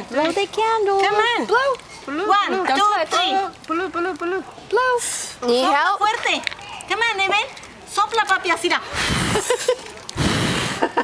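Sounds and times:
person blowing breath: 8.9 - 11.0.

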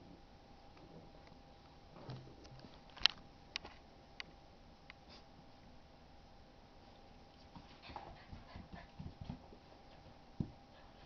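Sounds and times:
dogs play-wrestling thumps: 7.5 - 11.0.

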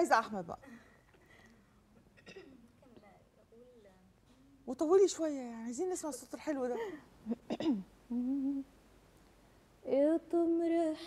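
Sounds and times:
woman humming: 7.2 - 8.7
woman singing: 9.8 - 11.0.

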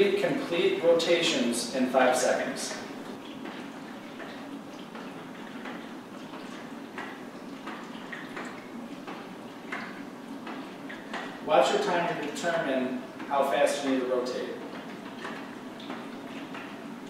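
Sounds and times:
steady background hiss: 0.0 - 17.0
water sloshing in a tank: 0.0 - 17.0.

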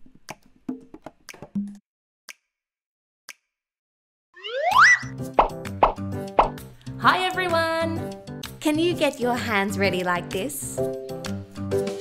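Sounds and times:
cartoon bloop rising in pitch: 4.4 - 5.2
children's music jingle: 4.4 - 10.7.

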